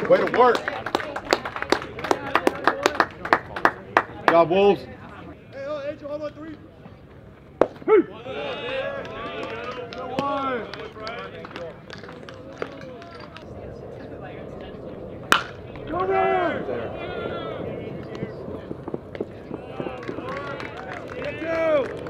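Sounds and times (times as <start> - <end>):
bat hitting ball: 7.6 - 8.0, 15.3 - 15.9
players and spectators shouting: 7.8 - 11.4, 15.8 - 18.5, 19.5 - 22.0
sharp crack: 15.2 - 16.0.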